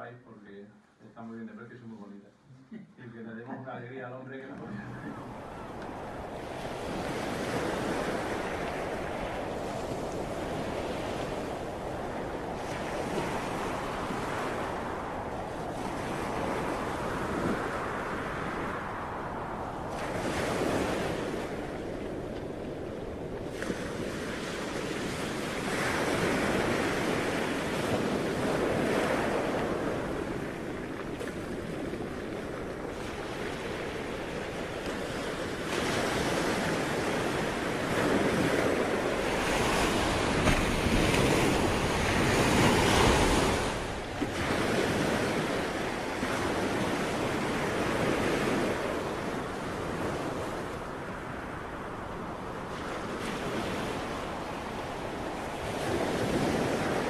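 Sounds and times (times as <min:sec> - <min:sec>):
sea waves breaking: 0:03.1 - 0:57.0.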